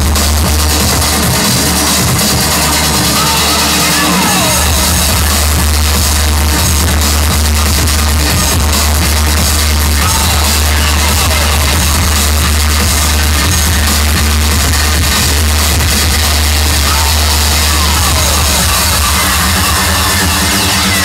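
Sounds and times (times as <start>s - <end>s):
heavy bass line: 0.0s - 21.0s
loud trance music: 0.0s - 21.0s.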